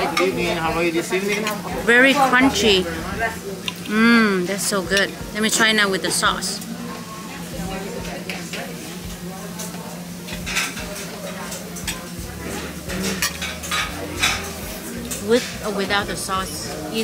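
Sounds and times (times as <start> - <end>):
restaurant room tone hum: 0.0 - 17.0.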